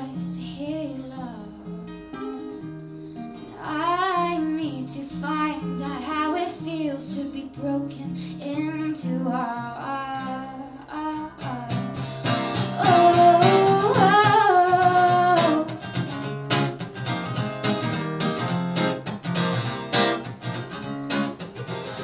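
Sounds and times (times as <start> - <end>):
woman singing wordless line: 0.0 - 1.8, 3.5 - 15.9
acoustic guitar strumming: 0.0 - 22.0.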